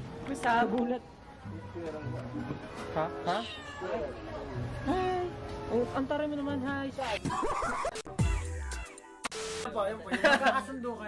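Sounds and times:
cat meowing: 0:03.3 - 0:04.3.

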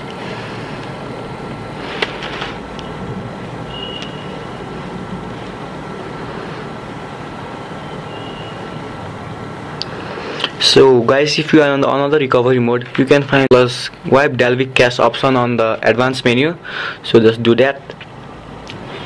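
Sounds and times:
background hiss and hum: 0:00.0 - 0:19.0
faint steady high tone: 0:03.7 - 0:04.7, 0:07.6 - 0:09.0.

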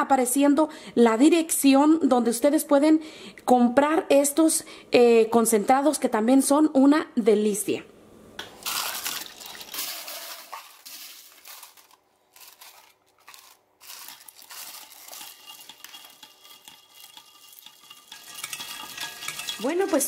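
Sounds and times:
ice cubes clinking and splashing: 0:08.6 - 0:20.0.

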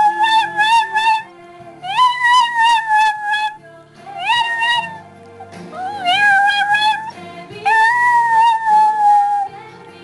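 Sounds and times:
small dog howling: 0:00.0 - 0:01.2, 0:01.9 - 0:03.6, 0:04.2 - 0:05.0, 0:05.8 - 0:07.1, 0:07.7 - 0:09.5
quiet music with low notes: 0:00.0 - 0:10.0.

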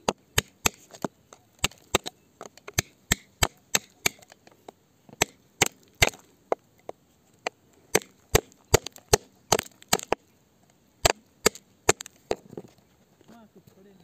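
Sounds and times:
metal tool chipping into stone: 0:00.0 - 0:04.4, 0:07.9 - 0:10.2, 0:11.0 - 0:12.4.

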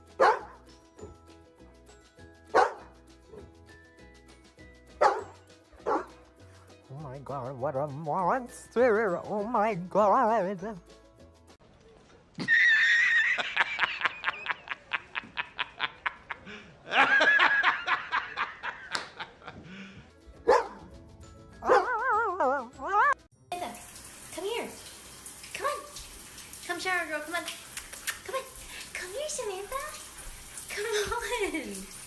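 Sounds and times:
man laughing hard: 0:12.4 - 0:20.0.

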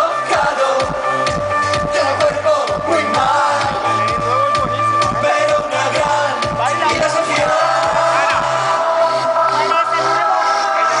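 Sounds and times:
live synth-pop music: 0:00.0 - 0:11.0
vocal line: 0:00.0 - 0:11.0.

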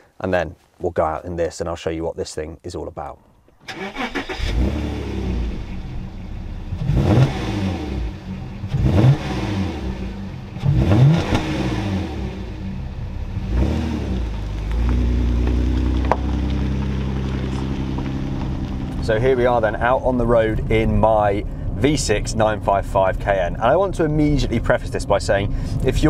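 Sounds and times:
car engine revving: 0:03.7 - 0:26.0
car pulling away with low drone: 0:03.7 - 0:26.0.

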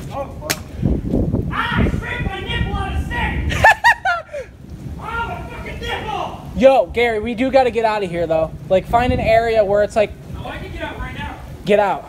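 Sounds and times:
sharp crack: 0:00.0 - 0:00.8.

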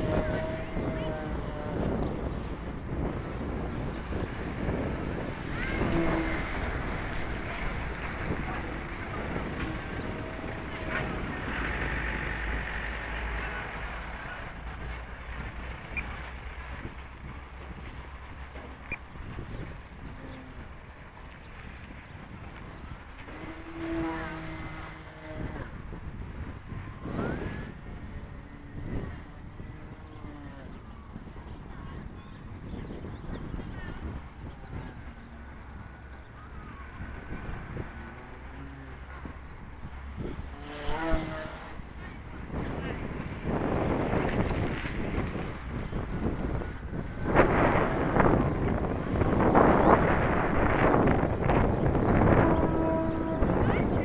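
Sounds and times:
model airplane motor whine: 0:00.0 - 0:54.0
wind buffeting microphone: 0:00.0 - 0:54.0.

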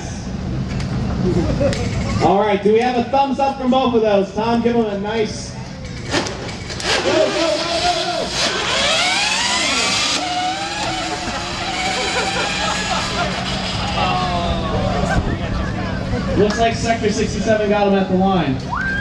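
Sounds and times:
electric motors whining: 0:05.9 - 0:15.1
crowd shouting and cheering: 0:06.1 - 0:16.4, 0:18.6 - 0:19.0.

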